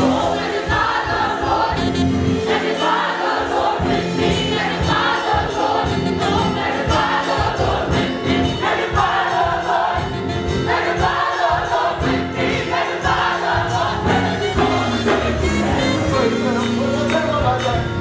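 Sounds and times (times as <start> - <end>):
bass: 0.0 - 2.6, 3.8 - 18.0
gospel choir singing: 0.0 - 17.0
drums keeping a steady beat: 0.0 - 18.0
piano: 0.0 - 18.0.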